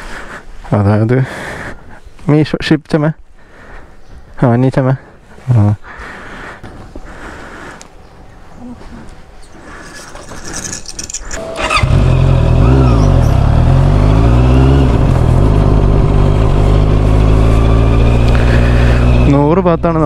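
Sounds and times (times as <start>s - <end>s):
motorcycle engine accelerating: 10.2s - 20.0s.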